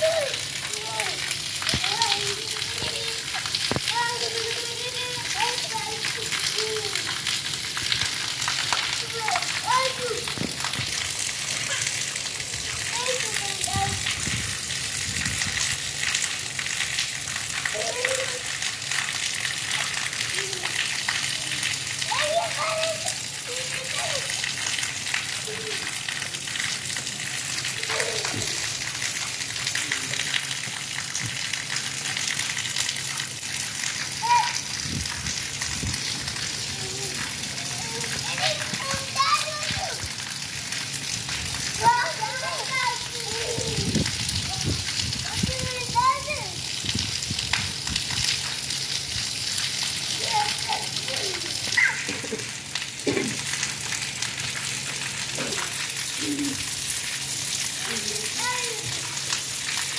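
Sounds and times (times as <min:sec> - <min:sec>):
child squealing: 0:00.0 - 0:01.2, 0:11.6 - 0:12.1, 0:27.8 - 0:28.6, 0:34.2 - 0:34.6, 0:50.2 - 0:52.4
rain falling: 0:00.0 - 0:59.9
child laughing: 0:11.5 - 0:12.2, 0:27.8 - 0:28.6, 0:41.9 - 0:43.9, 0:50.2 - 0:53.4, 0:55.4 - 0:56.7.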